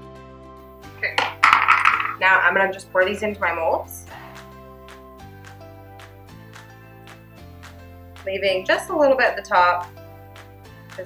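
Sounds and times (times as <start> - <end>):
soft background music chords: 0.0 - 11.0
woman speaking: 1.0 - 1.4, 2.1 - 4.1, 8.3 - 9.9.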